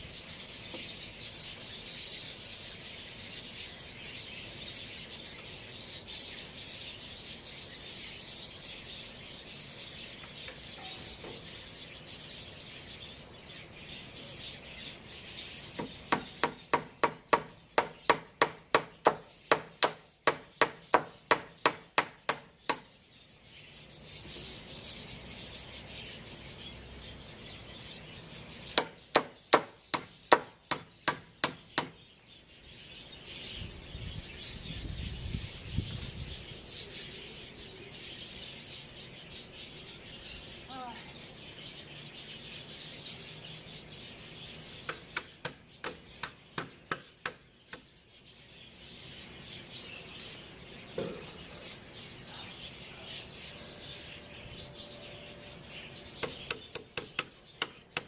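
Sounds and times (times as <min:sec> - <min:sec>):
hammer nailing wooden boards: 0:15.8 - 0:22.8, 0:28.8 - 0:32.0.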